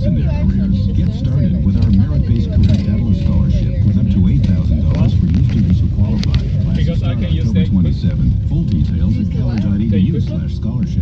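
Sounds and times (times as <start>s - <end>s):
car interior rumble: 0.0s - 11.0s
indistinct talk: 0.0s - 11.0s.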